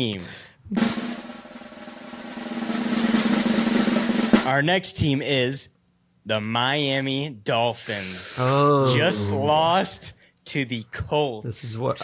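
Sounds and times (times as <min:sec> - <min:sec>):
snare drum roll: 0:00.8 - 0:04.5.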